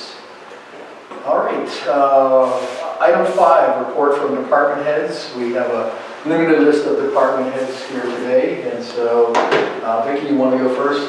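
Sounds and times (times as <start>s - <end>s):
person speaking: 1.1s - 11.0s.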